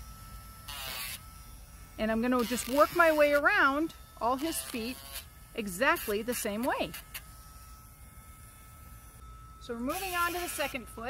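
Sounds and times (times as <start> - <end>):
rotary tool whine: 0.0 - 11.0.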